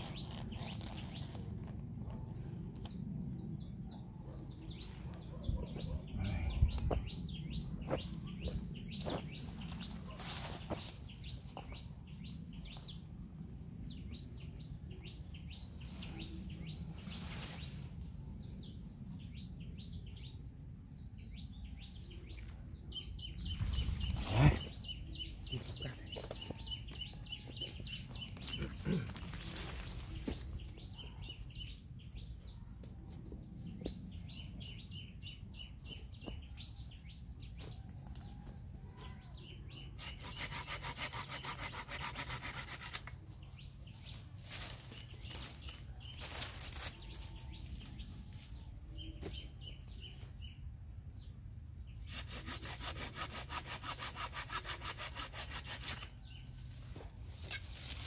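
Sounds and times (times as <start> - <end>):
hand saw cutting branch: 40.0 - 43.2, 52.0 - 56.2.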